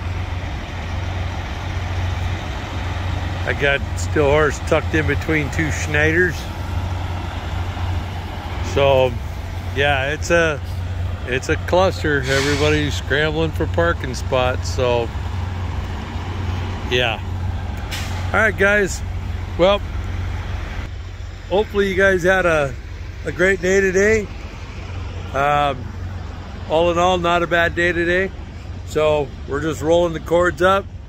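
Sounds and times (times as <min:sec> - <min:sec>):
diesel truck engines idling: 0:00.0 - 0:31.0.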